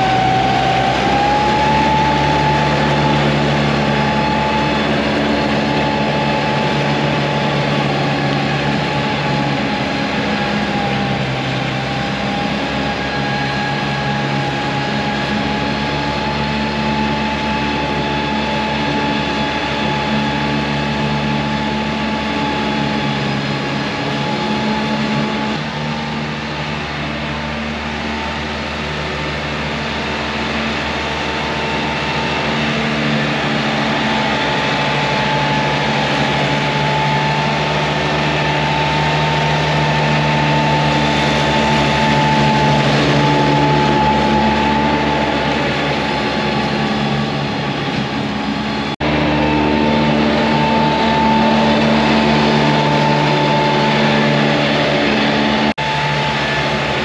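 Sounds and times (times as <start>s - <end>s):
mower deck whine: 0.0s - 57.0s
tractor diesel engine: 0.0s - 57.0s.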